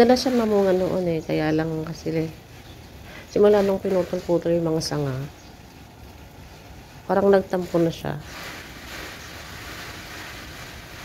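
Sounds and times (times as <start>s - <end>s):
steady hiss: 0.0s - 11.0s.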